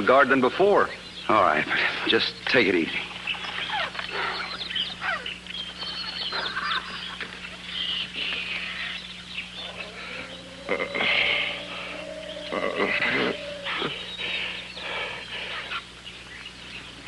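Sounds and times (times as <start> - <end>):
steady low hum: 0.0 - 17.0
bird and animal calls: 1.0 - 17.0.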